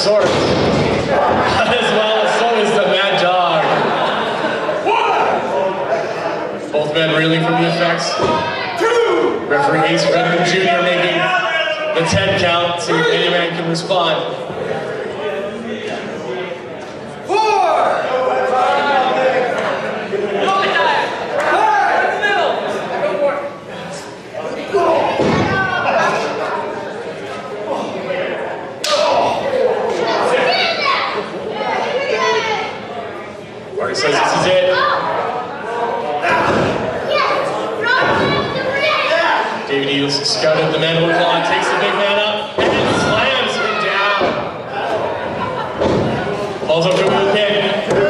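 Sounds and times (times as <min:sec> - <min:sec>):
men talking: 0:00.0 - 0:30.4, 0:33.6 - 0:36.8, 0:39.0 - 0:48.0
raised voices: 0:17.2 - 0:48.0.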